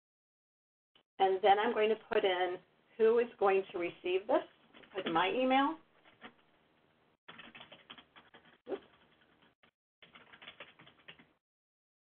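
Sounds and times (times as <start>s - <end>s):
computer keyboard typing: 7.3s - 11.4s.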